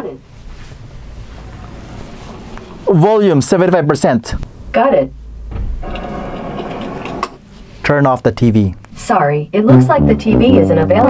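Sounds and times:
tv soundtrack low rumble: 0.3s - 6.0s, 9.5s - 11.0s.

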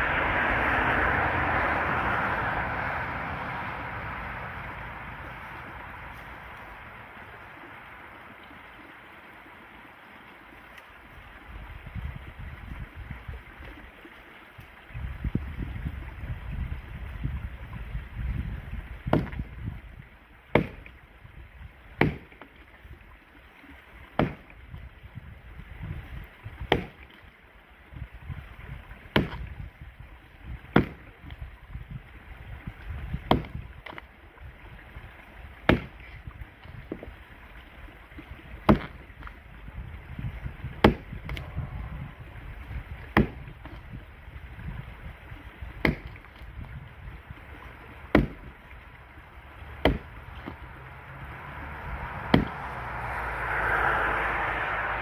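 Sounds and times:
axe chopping into a log: 19.1s - 19.5s, 20.5s - 20.9s, 22.0s - 22.5s, 24.2s - 24.5s, 26.7s - 27.0s, 29.1s - 29.5s, 30.7s - 31.1s, 33.2s - 34.0s, 35.6s - 36.1s, 38.6s - 39.0s, 40.8s - 41.4s, 43.1s - 43.8s, 45.8s - 46.2s, 48.1s - 48.5s, 49.8s - 50.6s, 52.2s - 52.7s.

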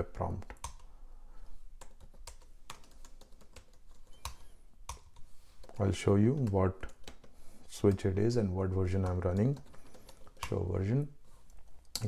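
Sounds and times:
computer keyboard typing: 0.5s - 0.9s, 1.8s - 10.7s.

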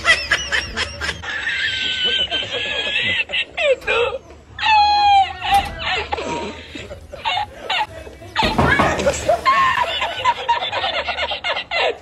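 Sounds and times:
high-pitched snickering laugh: 0.0s - 4.2s.

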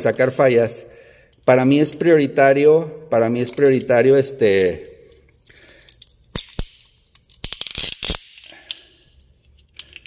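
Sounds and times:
wiring harness clicking and crackling: 2.9s - 10.0s.

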